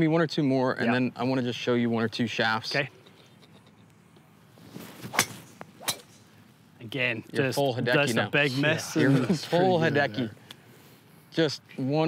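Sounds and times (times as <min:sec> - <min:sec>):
golf club swish: 0:04.6 - 0:06.3
golf club striking ball: 0:05.0 - 0:06.4.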